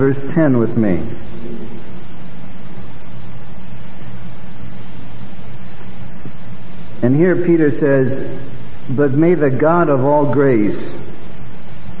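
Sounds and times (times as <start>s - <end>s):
faint low hum: 0.0s - 12.0s
steady hiss: 0.0s - 12.0s.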